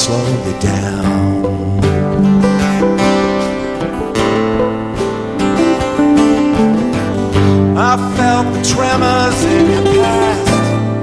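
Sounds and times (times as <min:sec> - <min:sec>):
person singing: 0:00.0 - 0:04.7, 0:05.4 - 0:11.0
strummed acoustic guitars: 0:00.0 - 0:11.0
drums played with sticks: 0:00.6 - 0:07.5.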